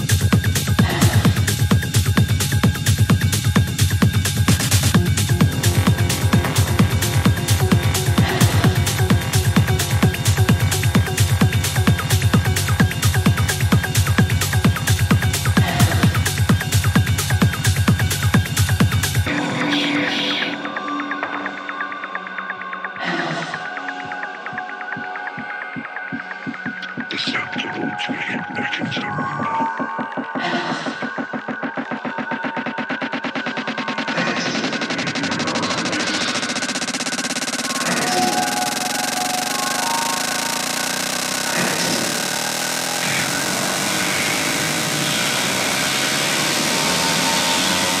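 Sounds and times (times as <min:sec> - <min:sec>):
fast ticking pattern: 0:00.0 - 0:19.3, 0:31.0 - 0:48.0
bass pulse: 0:00.0 - 0:19.4, 0:30.4 - 0:48.0
noisy percussion hits: 0:04.0 - 0:19.1
held synth tones: 0:05.0 - 0:14.9, 0:37.4 - 0:48.0.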